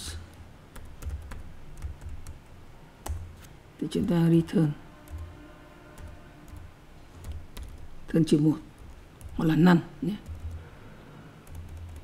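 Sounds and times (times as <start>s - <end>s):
computer keyboard keystrokes: 0.7s - 3.3s, 7.2s - 7.9s, 8.8s - 9.6s, 10.2s - 10.6s, 11.4s - 12.0s.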